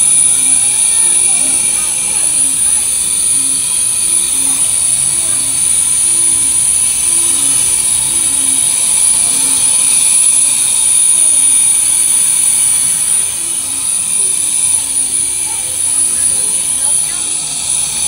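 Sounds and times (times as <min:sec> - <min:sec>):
faint murmur of voices: 0:00.0 - 0:18.0
fan rushing air with whine: 0:00.0 - 0:18.0.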